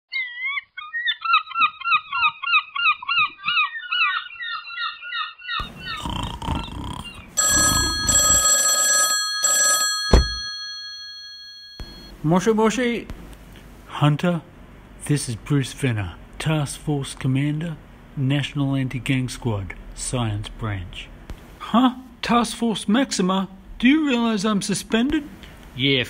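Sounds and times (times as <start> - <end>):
birds chattering: 0.2 - 7.8
man snoring: 5.6 - 8.4
telephone bell ringing: 7.4 - 12.1
telephone receiver picked up: 9.7 - 10.7.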